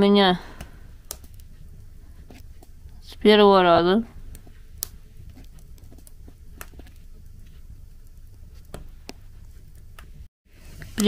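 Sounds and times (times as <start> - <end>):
wood fire crackling: 0.0 - 11.0.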